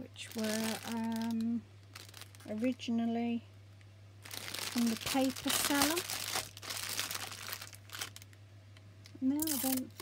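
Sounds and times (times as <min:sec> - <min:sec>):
plastic bag crinkling: 0:00.0 - 0:02.9, 0:04.2 - 0:08.4, 0:09.4 - 0:10.0.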